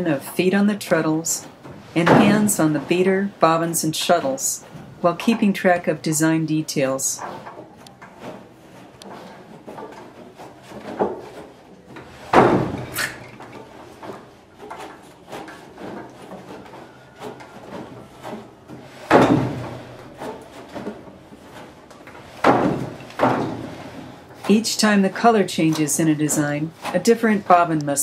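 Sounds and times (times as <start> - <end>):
wooden loom parts clacking: 0.0 - 28.0
loud wooden loom thumps: 0.4 - 4.4, 12.0 - 27.7.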